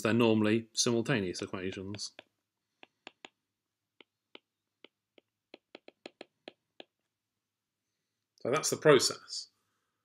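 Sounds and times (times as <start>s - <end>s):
stylus tapping a tablet screen: 1.8s - 7.1s.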